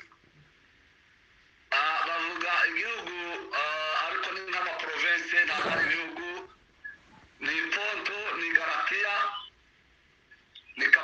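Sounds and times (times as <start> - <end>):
person talking over call line: 1.7 - 6.5, 7.4 - 9.5, 10.8 - 11.0.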